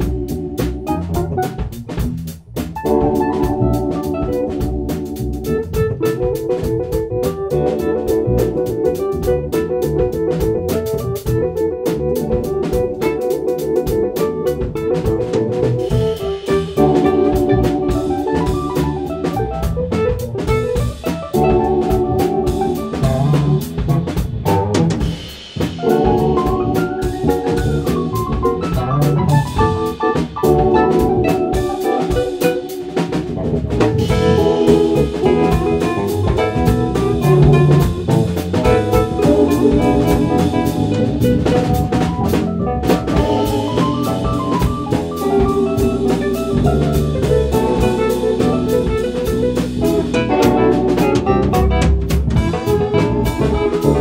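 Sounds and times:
drum kit groove: 0.0 - 54.0
electric bass: 0.0 - 54.0
held keyboard chords: 0.0 - 54.0
electric guitar: 2.8 - 54.0.

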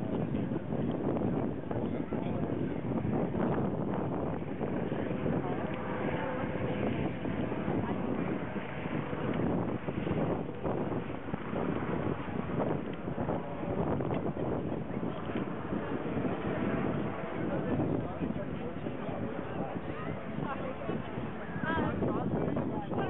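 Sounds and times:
faint indistinct voices: 0.0 - 23.0
wind buffeting microphone: 0.0 - 23.0.

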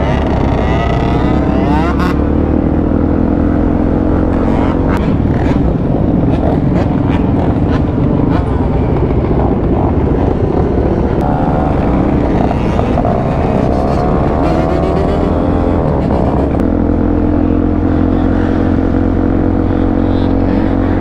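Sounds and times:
motorcycle engine accelerating: 0.0 - 21.0.

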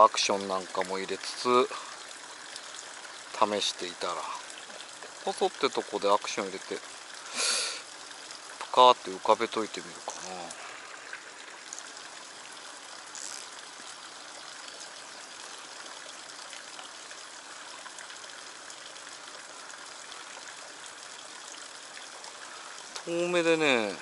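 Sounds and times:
trickling running water: 0.0 - 24.0
faint ticks: 13.0 - 13.7.

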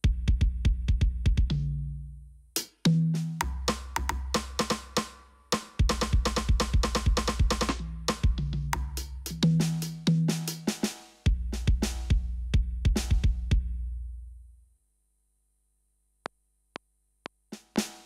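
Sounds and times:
programmed drum beat: 0.0 - 1.7, 2.6 - 13.8, 16.8 - 18.0.

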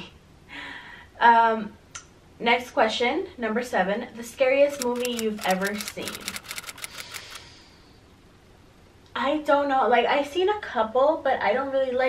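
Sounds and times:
soft clicks: 4.7 - 7.4.

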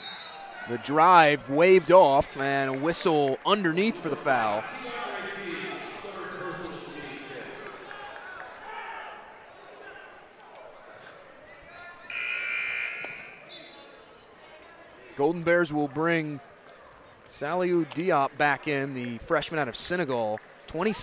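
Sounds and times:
voices echoing in a gymnasium: 0.0 - 21.0
scorer's table horn blast: 12.1 - 13.4.

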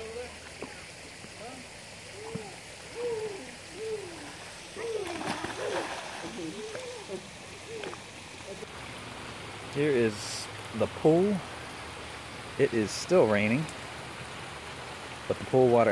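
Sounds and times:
steady rain: 0.0 - 15.9
frog calling: 2.1 - 8.7
person swimming splashing: 4.2 - 8.1.

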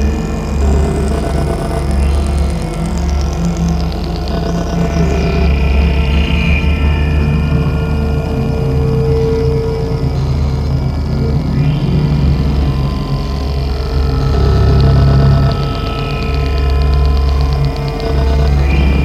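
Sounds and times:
dense low drone: 0.0 - 19.0.

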